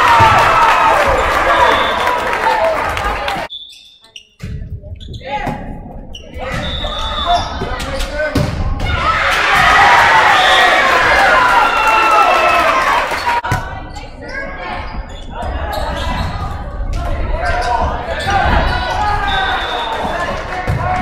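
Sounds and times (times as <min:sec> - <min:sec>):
people shouting in a gym: 0:06.4 - 0:21.0.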